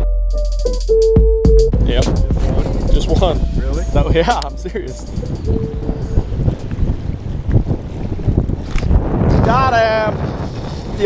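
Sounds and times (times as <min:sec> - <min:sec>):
wind buffeting microphone: 0:01.8 - 0:11.0.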